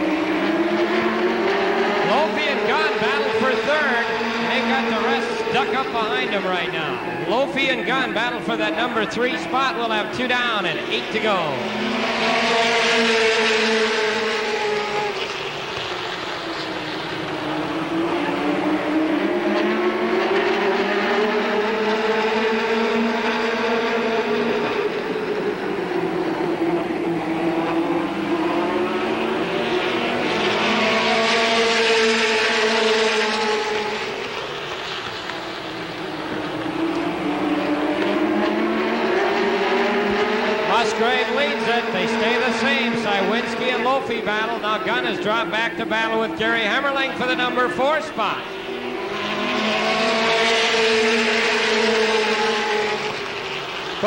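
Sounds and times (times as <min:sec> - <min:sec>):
racing car engines: 0:00.0 - 0:54.0.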